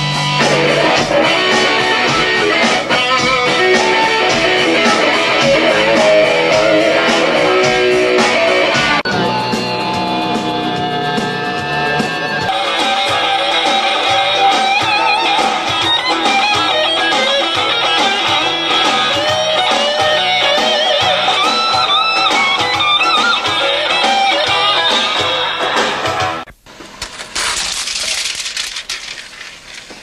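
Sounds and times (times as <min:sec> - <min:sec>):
electric guitar lead melody: 0:00.0 - 0:26.4
rhythmic backing music: 0:00.0 - 0:26.5.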